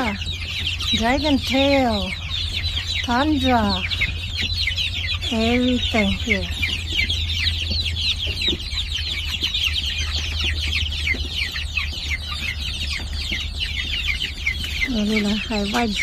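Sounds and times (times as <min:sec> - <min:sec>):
chicks peeping: 0:00.0 - 0:16.0
steady low hum: 0:00.0 - 0:16.0.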